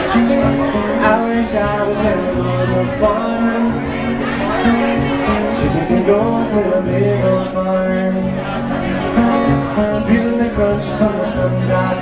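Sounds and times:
strummed acoustic guitar song: 0.0 - 12.0.

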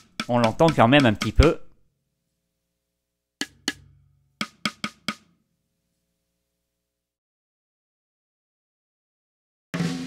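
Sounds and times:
snare drum hits: 0.0 - 1.6, 3.4 - 3.8, 4.4 - 5.3.

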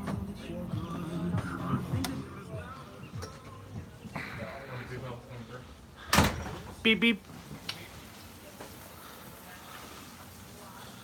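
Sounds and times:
faint voices: 0.0 - 6.2, 6.8 - 11.0.

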